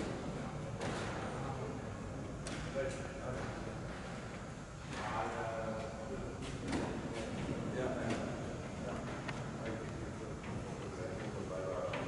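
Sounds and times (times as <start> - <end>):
indoor hall background noise: 0.0 - 12.0.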